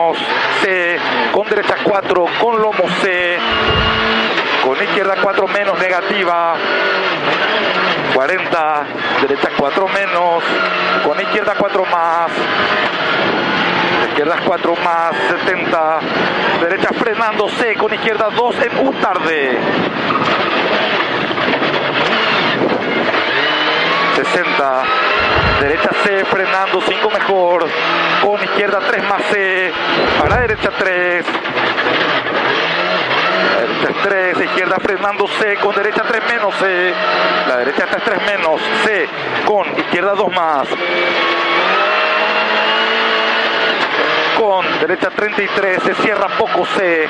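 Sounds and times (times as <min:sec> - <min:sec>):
car engine at high revs: 0:03.4 - 0:04.4, 0:25.2 - 0:25.8, 0:29.8 - 0:30.8
rally car engine at high revs: 0:03.4 - 0:04.5, 0:25.1 - 0:25.9, 0:29.8 - 0:30.8, 0:31.4 - 0:34.6, 0:40.8 - 0:44.9.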